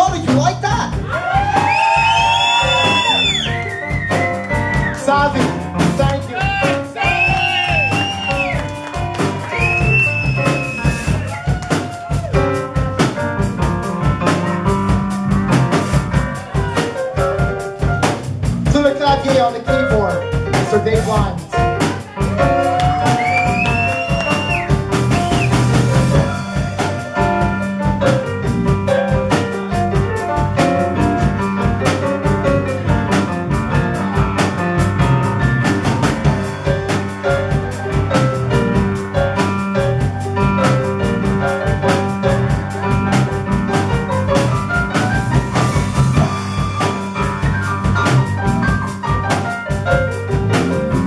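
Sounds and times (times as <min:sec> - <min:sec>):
bass: 0:00.0 - 0:51.0
drum beat: 0:00.0 - 0:51.0.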